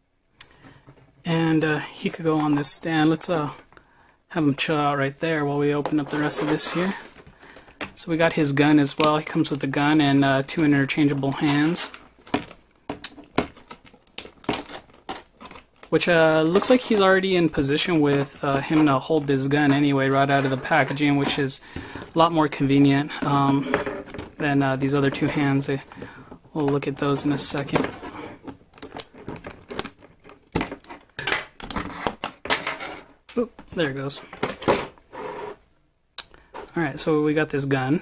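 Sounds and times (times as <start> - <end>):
plastic packaging crinkling: 5.7 - 32.3.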